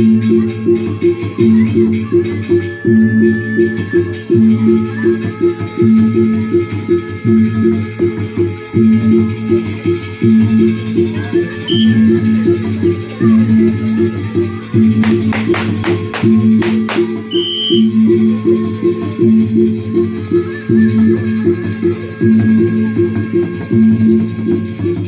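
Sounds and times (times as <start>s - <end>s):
gong and drum ensemble: 14.9s - 17.4s
sharp clacks: 15.0s - 17.3s.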